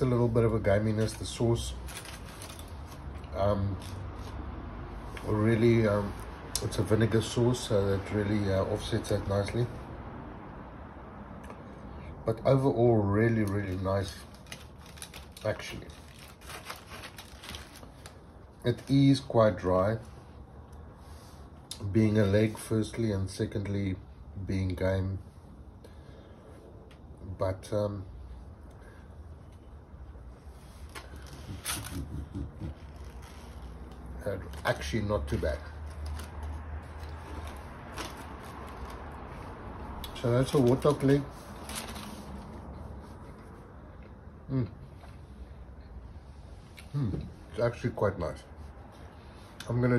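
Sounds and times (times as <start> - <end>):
aluminium foil crinkling: 0.0 - 4.4, 13.3 - 19.6, 32.8 - 39.5, 40.2 - 42.7
low background hum: 0.0 - 49.9.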